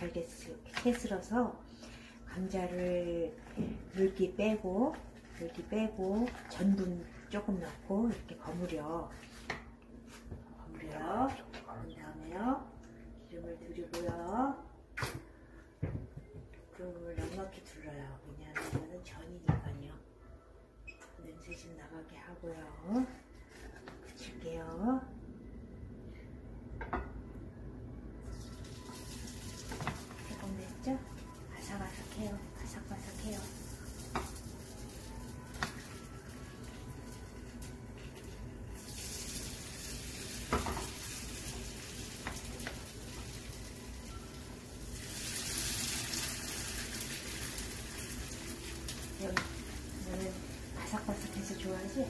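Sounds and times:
batter sizzling in hot oil: 28.5s - 52.0s.

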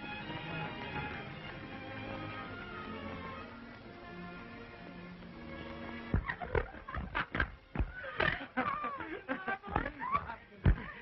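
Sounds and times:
film score with held tones: 0.0s - 11.0s.

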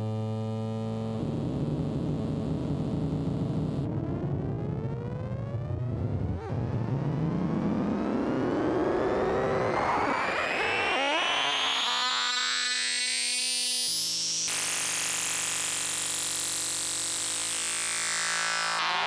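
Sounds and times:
synthesizer pitch sweep: 9.0s - 13.4s.

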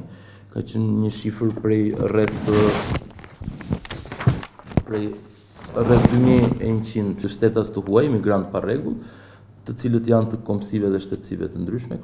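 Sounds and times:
paper being leafed through: 2.0s - 6.8s.

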